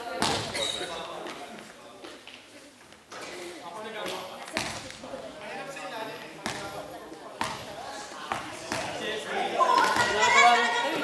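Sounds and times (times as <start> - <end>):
people talking: 0.0 - 11.0
basketball bouncing on gym floor: 6.4 - 6.8, 7.4 - 7.7.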